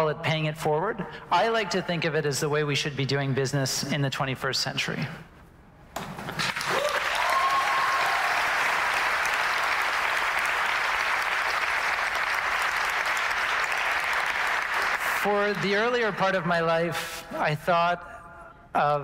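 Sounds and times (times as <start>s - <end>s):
audience applauding: 6.3s - 16.2s.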